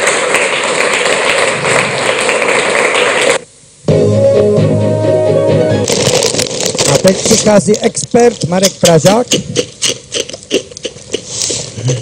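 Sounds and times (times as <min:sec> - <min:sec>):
held music chord: 0:03.9 - 0:05.8
crackly rustling: 0:05.8 - 0:08.8.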